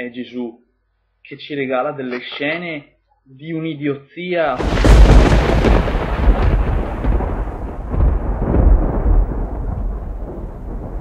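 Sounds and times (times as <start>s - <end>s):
loud rumbling: 4.6s - 11.0s.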